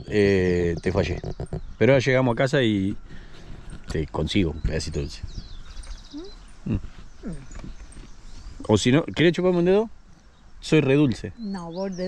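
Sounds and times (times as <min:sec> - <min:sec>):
woman murmuring with mouth full: 0:06.1 - 0:07.9.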